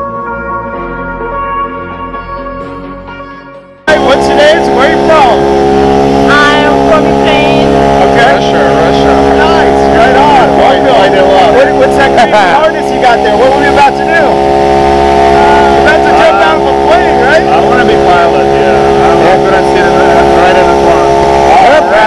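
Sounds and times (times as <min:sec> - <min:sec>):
music: 0:00.0 - 0:22.0
loud engine drone: 0:01.9 - 0:22.0
voices talking: 0:03.9 - 0:22.0.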